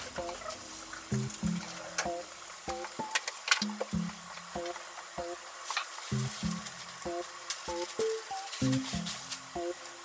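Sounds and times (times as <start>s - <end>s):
soft plucked background music: 0.0s - 10.0s
steady sizzling hiss: 0.0s - 10.0s.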